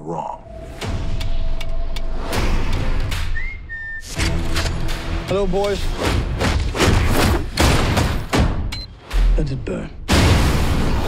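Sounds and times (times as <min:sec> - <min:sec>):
high whistle: 0:03.2 - 0:04.2.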